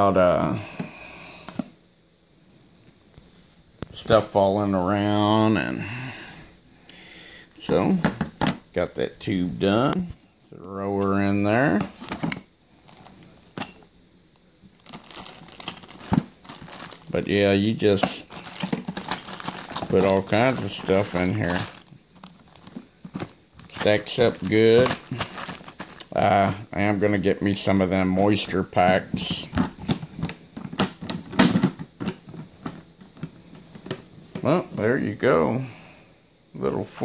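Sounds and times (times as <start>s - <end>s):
plastic bags crinkling: 11.8s - 13.8s, 14.6s - 31.2s.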